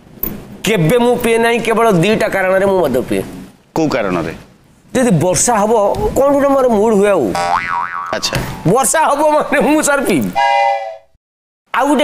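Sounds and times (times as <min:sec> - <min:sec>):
cartoon boing effect: 0:07.4 - 0:08.5.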